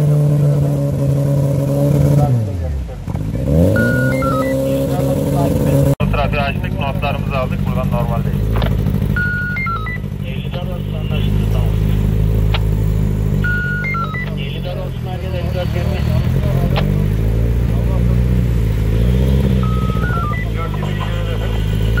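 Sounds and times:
vehicle engines droning: 0:00.0 - 0:22.0
electronic beeping tune: 0:03.6 - 0:05.3, 0:09.1 - 0:10.1, 0:13.4 - 0:14.7, 0:19.5 - 0:22.0.

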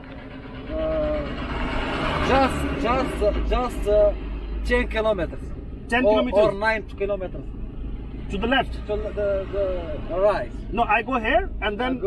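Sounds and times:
vehicle passing by: 0:00.0 - 0:11.6
low engine rumble: 0:00.0 - 0:12.0.

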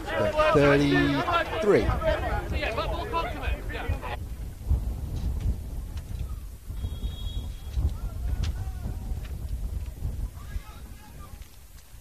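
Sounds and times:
distant voices shouting: 0:00.0 - 0:04.2, 0:07.5 - 0:09.3, 0:10.1 - 0:11.6
wind rumbling on microphone: 0:00.0 - 0:12.0.

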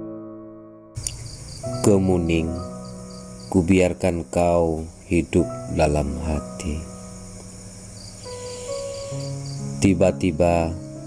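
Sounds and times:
calm background music: 0:00.0 - 0:11.0
person speaking: 0:01.0 - 0:02.8, 0:03.4 - 0:06.9, 0:09.8 - 0:10.8
pulsing cricket-like chirp: 0:01.0 - 0:11.0.

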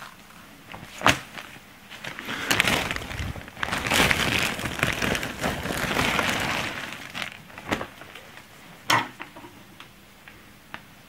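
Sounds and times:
plastic sack rustling: 0:00.0 - 0:08.8.

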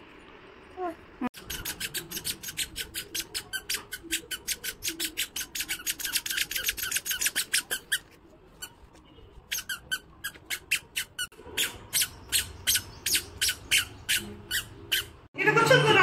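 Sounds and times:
squeaker sandals squeaking: 0:01.4 - 0:15.3.

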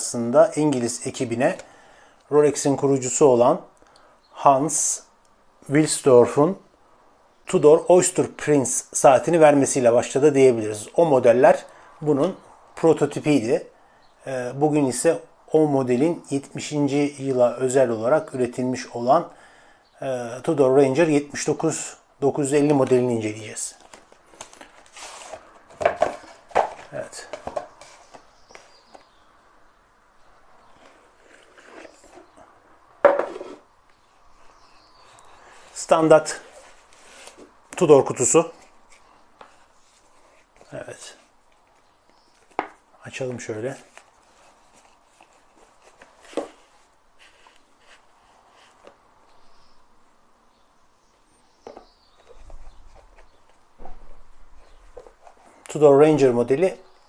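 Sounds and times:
rustling of cardboard box: 0:23.8 - 0:29.0, 0:30.7 - 0:32.4, 0:34.7 - 0:37.6, 0:43.6 - 0:48.9
box lid scraping: 0:24.4 - 0:28.8, 0:30.7 - 0:32.4, 0:33.0 - 0:33.7.

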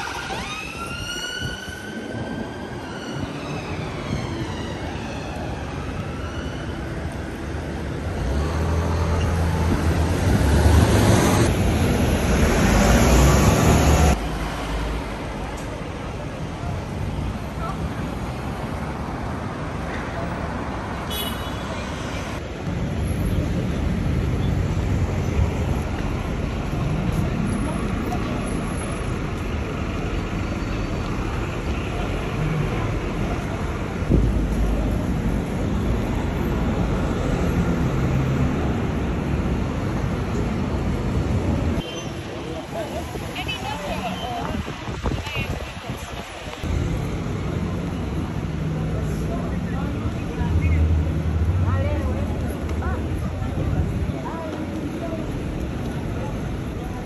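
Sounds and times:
traffic passing: 0:00.0 - 0:57.0
passers-by talking: 0:25.5 - 0:39.1, 0:41.2 - 0:57.0.

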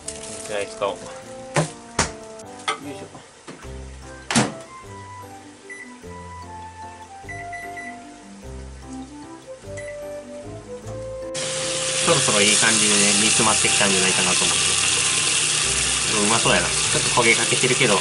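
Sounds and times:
background music with bass line: 0:03.7 - 0:12.3
food sizzling in a pan: 0:11.4 - 0:18.0.

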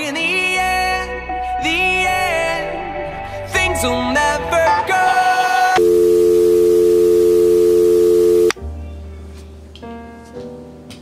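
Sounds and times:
quiet music: 0:00.0 - 0:11.0
steady electronic tone: 0:05.8 - 0:08.5.

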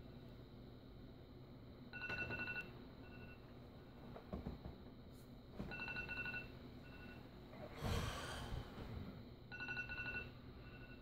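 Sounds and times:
phone alarm beeping: 0:05.7 - 0:07.2, 0:09.5 - 0:11.0.

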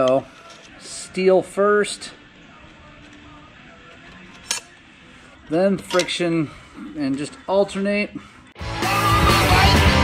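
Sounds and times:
metal plate clinking: 0:05.8 - 0:06.2.

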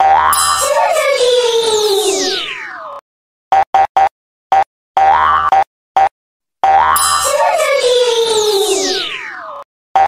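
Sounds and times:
sweep rising and falling: 0:07.2 - 0:09.4.

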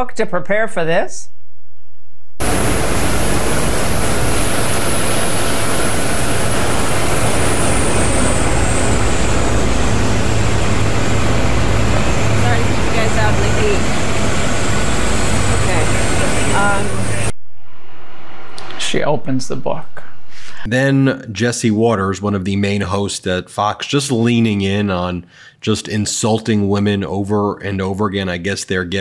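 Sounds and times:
jet engines running: 0:02.4 - 0:20.7.

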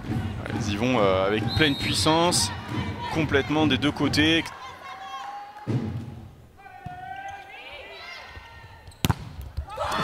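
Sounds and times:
volleyball smack: 0:09.0 - 0:09.7.

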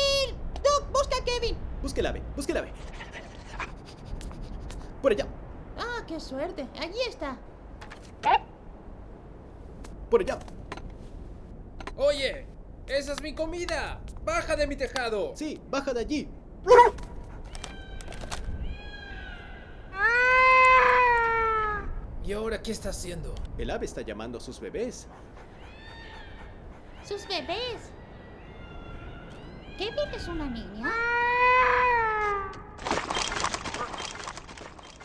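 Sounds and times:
cartoon bird calling: 0:16.6 - 0:22.0, 0:25.5 - 0:32.6
rustling crackling noise: 0:16.9 - 0:18.7, 0:32.8 - 0:35.0.

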